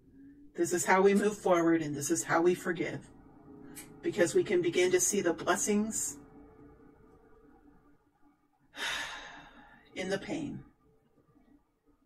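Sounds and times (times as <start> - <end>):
woman breathing in tearfully: 8.8 - 9.9.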